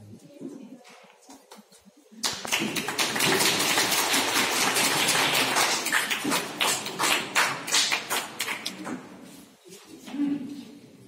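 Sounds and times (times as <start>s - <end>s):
people clapping: 1.5s - 9.2s.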